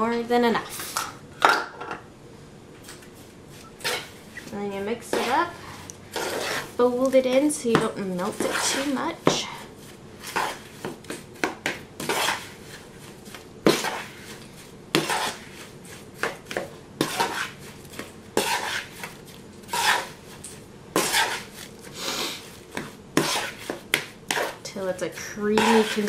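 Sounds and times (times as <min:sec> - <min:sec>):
spoon scraping plastic bowl: 0:03.5 - 0:05.5, 0:06.1 - 0:06.8, 0:08.2 - 0:11.2, 0:12.0 - 0:13.1, 0:13.7 - 0:16.4, 0:17.0 - 0:26.0.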